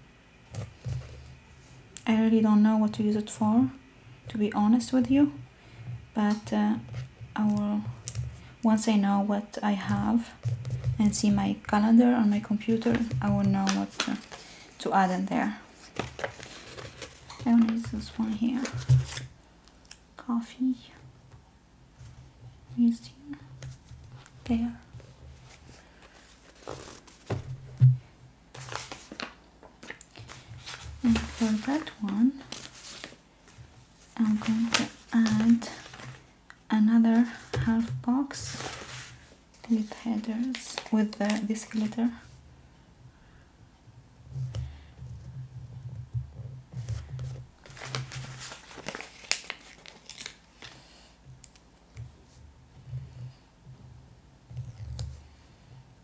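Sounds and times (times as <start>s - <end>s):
paper rustling: 12.5s - 14.8s, 15.7s - 19.3s, 25.3s - 27.9s, 28.5s - 36.3s, 37.2s - 42.1s, 46.8s - 50.8s
sticker sheet crinkling: 28.6s - 33.2s, 34.2s - 36.3s, 37.2s - 42.1s, 47.6s - 50.8s.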